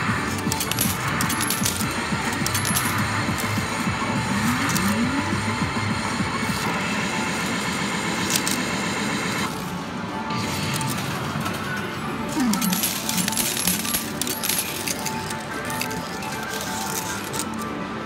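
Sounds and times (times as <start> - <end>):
arcade machine electronic music: 0.0 - 18.0
metal medals clinking: 0.2 - 3.8, 12.3 - 17.7.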